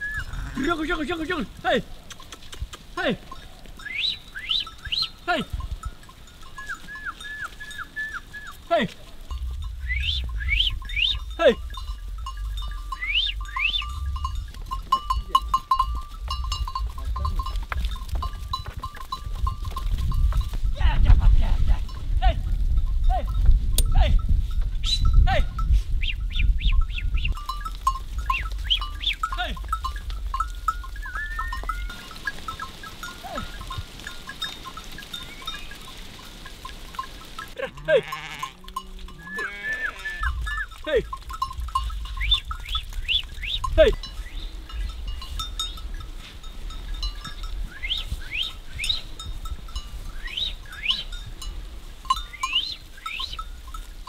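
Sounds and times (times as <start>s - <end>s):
sheep bleating: 0.1s - 1.8s, 37.6s - 41.1s
man shouting: 3.0s - 3.2s, 5.3s - 5.5s, 8.7s - 8.9s, 11.4s - 11.6s, 22.2s - 22.4s, 23.9s - 24.2s, 25.2s - 25.5s, 40.8s - 41.1s
low rumble: 9.1s - 14.9s.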